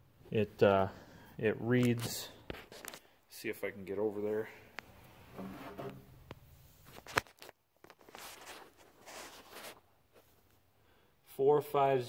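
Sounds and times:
rustling and shuffling: 1.7s - 3.2s, 4.0s - 10.8s.

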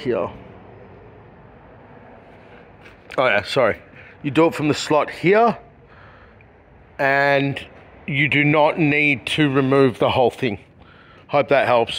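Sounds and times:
faint background noise: 0.0s - 11.9s.

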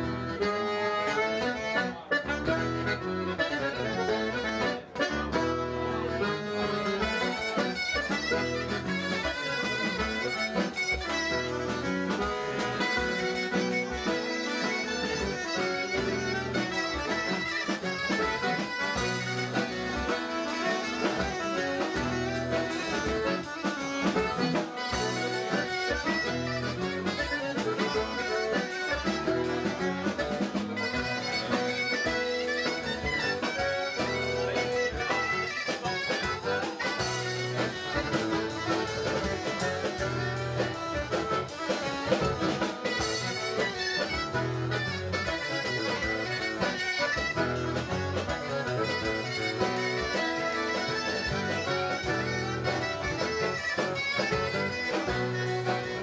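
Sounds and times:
reed instruments playing tune: 0.0s - 56.0s.

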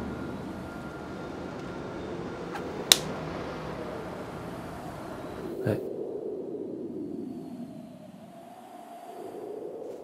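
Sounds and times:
distant city traffic hum: 0.0s - 5.9s
faint steady tone: 0.0s - 10.0s.

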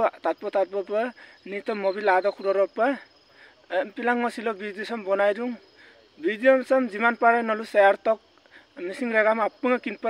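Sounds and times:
man speaking close to microphone: 0.0s - 8.2s, 8.8s - 10.0s
night insects trilling: 0.0s - 10.0s.

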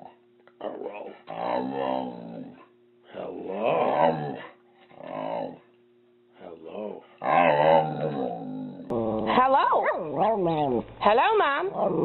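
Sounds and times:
dog growling vocalization: 0.6s - 5.7s, 6.7s - 10.9s, 11.7s - 12.0s.

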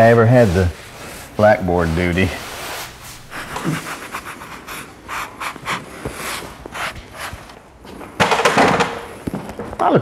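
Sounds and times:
sponges rubbing on a panel: 0.0s - 7.6s.

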